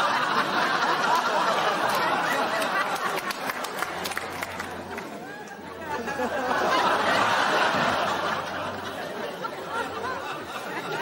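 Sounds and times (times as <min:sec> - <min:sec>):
studio audience laughing: 0:00.0 - 0:04.6, 0:05.8 - 0:11.0.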